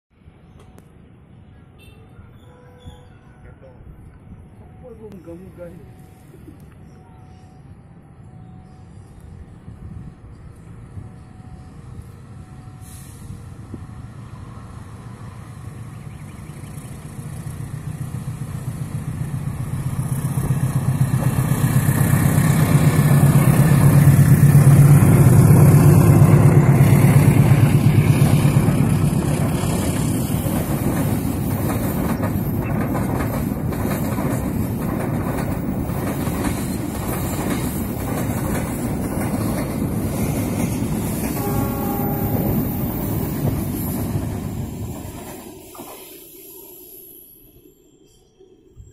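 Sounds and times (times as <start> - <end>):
diesel locomotive engine drone: 2.8 - 48.9
wagons rumbling over rail joints: 19.0 - 45.9.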